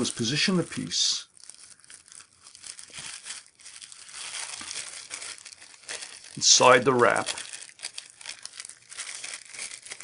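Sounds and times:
plastic wrap crinkling: 0.0s - 10.0s.

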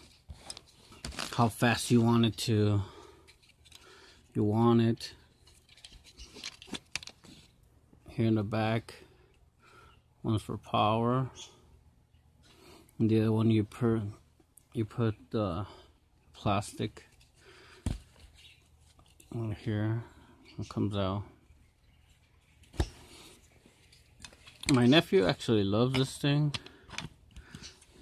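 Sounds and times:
plastic pen handling rustles: 0.0s - 1.5s, 3.3s - 3.9s, 5.2s - 7.6s, 17.0s - 19.4s, 22.1s - 28.0s.

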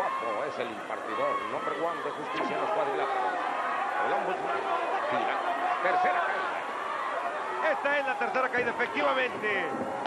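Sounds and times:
crowd noise: 0.0s - 10.0s
men commentating: 0.0s - 10.0s.

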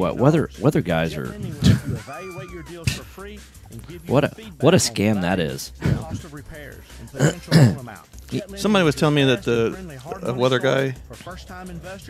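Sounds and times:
man laughing: 1.2s - 6.4s, 7.0s - 7.9s
man clearing his throat: 1.4s - 3.1s, 5.8s - 6.3s, 7.1s - 7.9s.

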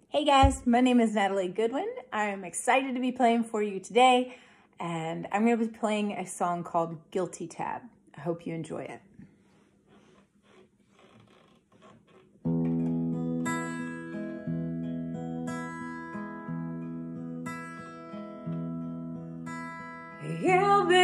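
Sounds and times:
acoustic guitar chords: 12.5s - 21.0s.

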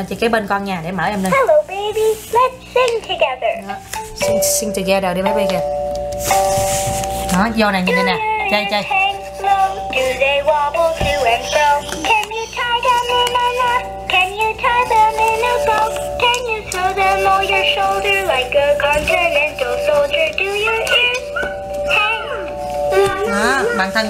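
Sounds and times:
toy music backing: 1.4s - 24.0s
toy childlike voice singing: 7.9s - 24.0s.

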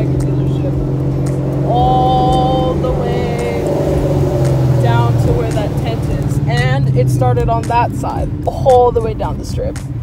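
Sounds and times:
car engine and road drone: 0.0s - 10.0s
person speaking: 1.6s - 9.8s.

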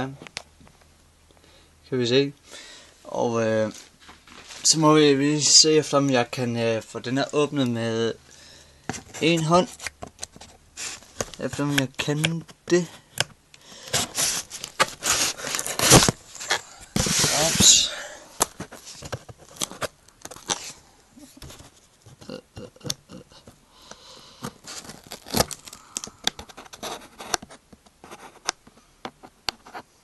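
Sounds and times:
scissors cutting cardboard: 13.8s - 17.8s, 24.4s - 28.6s.

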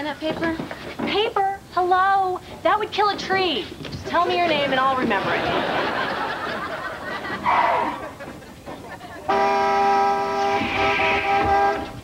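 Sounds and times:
vehicle horn blast: 9.3s - 12.0s.

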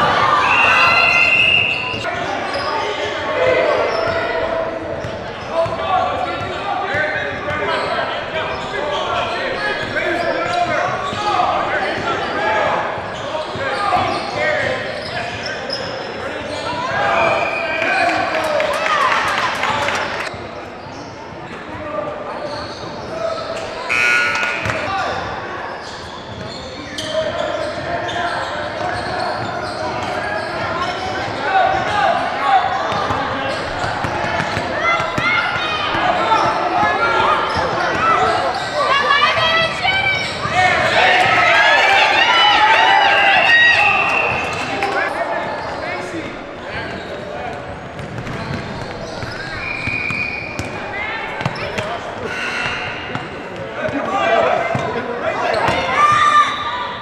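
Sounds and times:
crowd shouting in a hall: 0.0s - 20.7s, 21.7s - 57.0s.

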